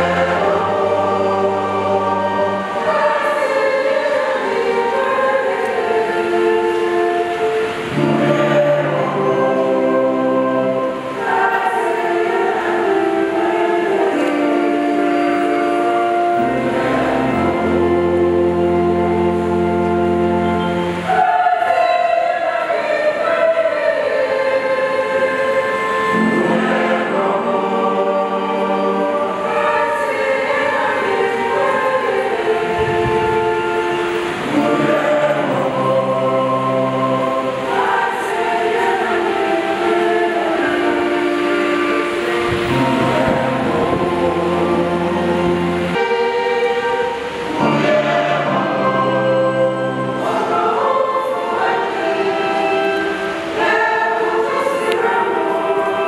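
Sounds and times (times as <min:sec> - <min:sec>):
choir singing held chords: 0:00.0 - 0:56.0.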